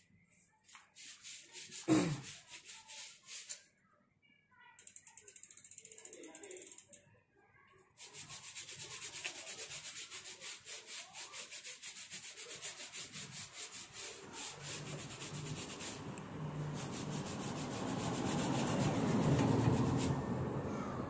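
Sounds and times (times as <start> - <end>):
brush scrubbing bike chain: 0.7 - 3.6, 8.0 - 20.2.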